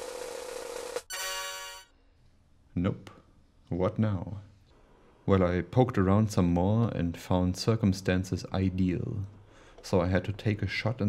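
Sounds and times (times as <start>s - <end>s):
buzzing electronic tone: 0.0s - 1.9s.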